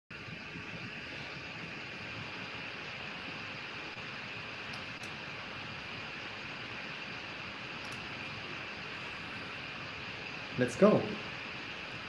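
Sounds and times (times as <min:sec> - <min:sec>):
microphone background hiss: 0:00.1 - 0:12.0
faint clicks: 0:07.8 - 0:08.1.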